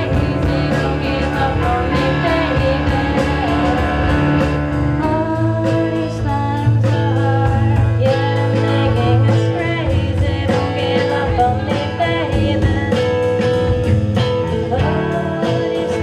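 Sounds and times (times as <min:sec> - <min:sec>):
drum kit beat: 0:00.0 - 0:16.0
electric guitar: 0:00.0 - 0:16.0
keyboard: 0:00.0 - 0:16.0
woman singing: 0:00.0 - 0:16.0.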